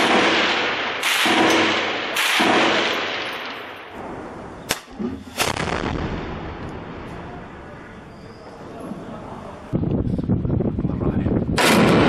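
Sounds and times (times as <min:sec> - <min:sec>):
sharp gunshot cracks: 0:00.0 - 0:06.8, 0:11.6 - 0:12.0.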